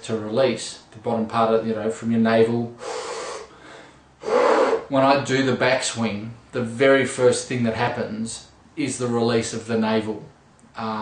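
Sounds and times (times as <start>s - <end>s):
man breathing through mouth: 2.8s - 4.9s.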